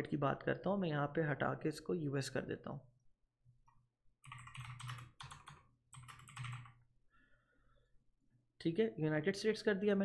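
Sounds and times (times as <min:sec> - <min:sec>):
faint typing on keyboard: 0:03.6 - 0:06.8.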